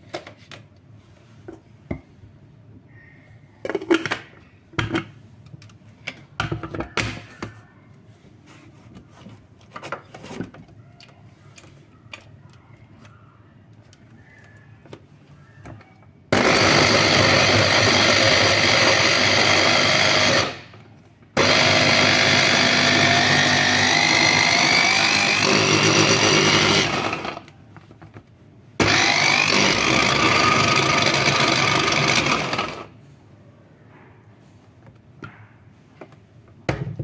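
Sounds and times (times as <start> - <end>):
electric chopper motor whining: 28.8 - 32.8.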